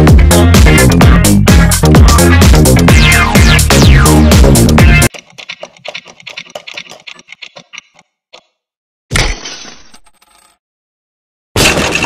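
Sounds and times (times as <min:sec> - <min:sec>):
crash of shattering pieces: 0:11.6 - 0:12.0.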